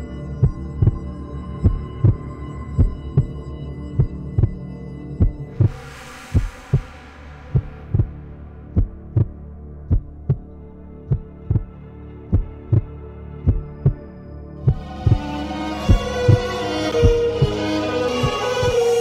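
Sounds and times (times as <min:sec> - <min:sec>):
steady drone: 0:00.0 - 0:19.0
low heartbeat thumps: 0:00.4 - 0:01.0, 0:01.6 - 0:02.2, 0:05.2 - 0:14.0, 0:14.7 - 0:15.3
hissing swell: 0:05.5 - 0:09.8.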